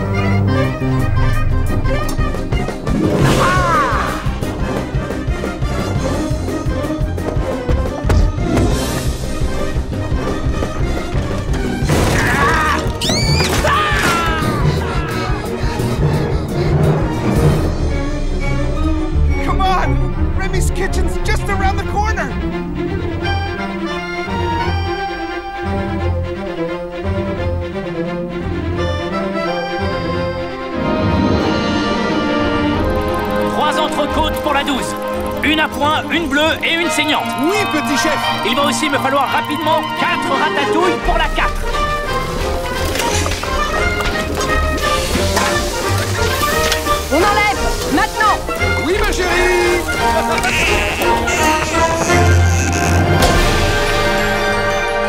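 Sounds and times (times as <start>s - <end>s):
orchestral soundtrack: 0.0s - 55.0s.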